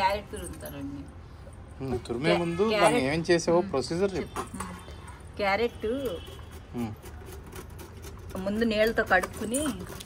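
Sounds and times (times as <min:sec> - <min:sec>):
carrot scraping on grater: 0:06.2 - 0:10.0.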